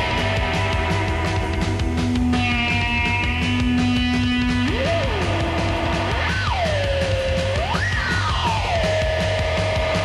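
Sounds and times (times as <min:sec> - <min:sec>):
fast psychobilly rock music: 0:00.0 - 0:10.0.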